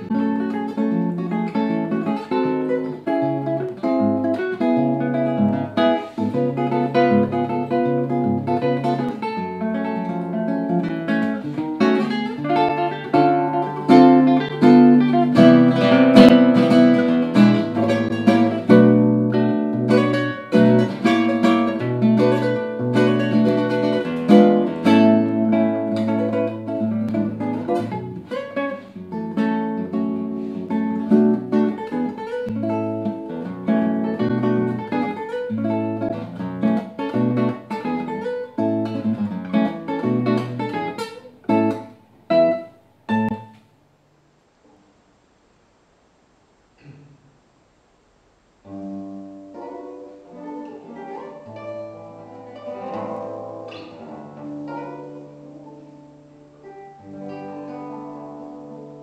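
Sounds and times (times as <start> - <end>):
classical guitar fingerstyle: 0.0 - 43.8, 48.6 - 59.0.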